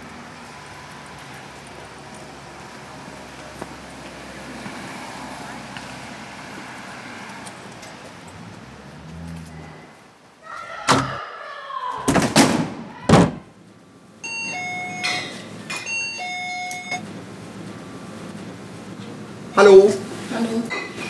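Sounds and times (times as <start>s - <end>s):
door entry chime: 14.2s - 17.0s.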